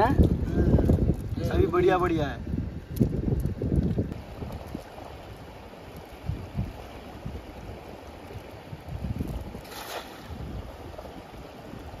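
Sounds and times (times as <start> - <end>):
wind buffeting microphone: 0.0 - 12.0
river water running: 4.2 - 12.0.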